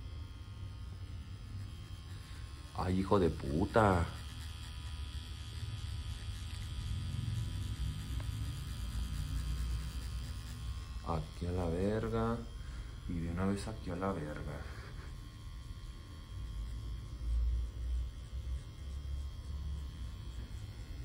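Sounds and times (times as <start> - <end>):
tattoo machine humming: 0.0 - 21.0.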